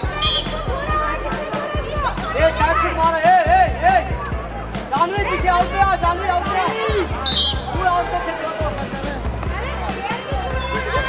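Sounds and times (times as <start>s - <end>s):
background music: 0.0s - 11.0s
players shouting: 0.0s - 11.0s
high whistle: 7.2s - 7.7s.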